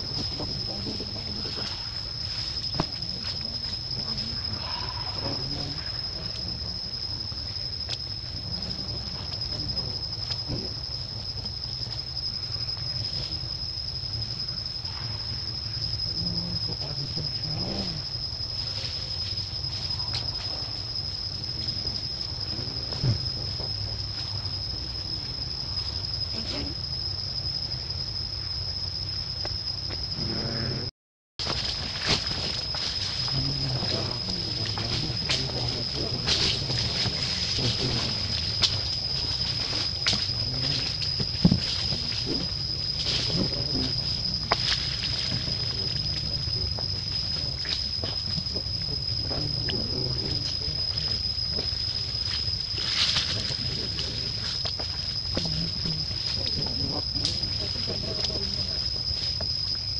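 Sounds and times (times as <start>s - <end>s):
high-pitched insect drone: 0.0s - 59.9s
high-pitched whine: 0.0s - 59.9s.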